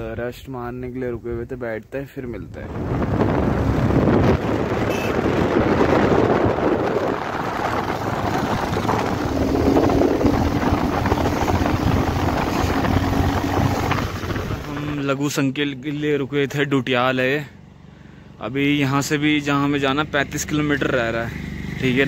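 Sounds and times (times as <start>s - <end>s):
wind rushing over microphone: 2.2s - 15.2s
motorcycle engine running: 2.8s - 15.0s, 17.6s - 22.0s.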